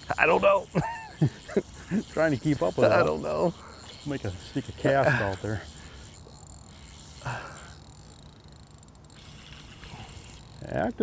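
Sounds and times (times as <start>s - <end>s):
fishing reel winding: 0.0s - 11.0s
steady low hum: 0.0s - 11.0s.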